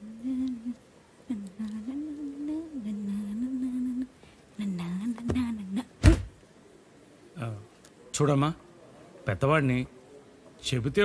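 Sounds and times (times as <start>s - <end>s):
person humming a slow tune: 0.0s - 4.1s.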